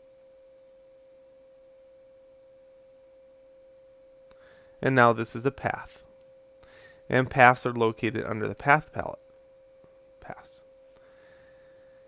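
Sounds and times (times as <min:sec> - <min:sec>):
faint electronic tone: 0:00.0 - 0:12.0.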